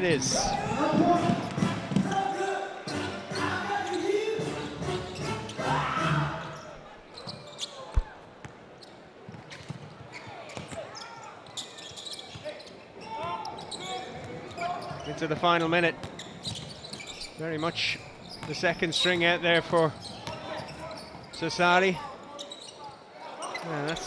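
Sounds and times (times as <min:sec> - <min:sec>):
basketball bounces: 0:09.3 - 0:10.9.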